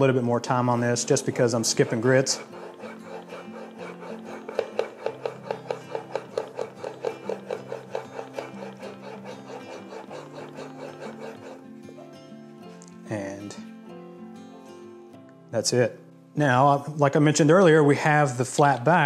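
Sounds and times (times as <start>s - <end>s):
chisel rubbing on waterstone: 0.0s - 12.2s.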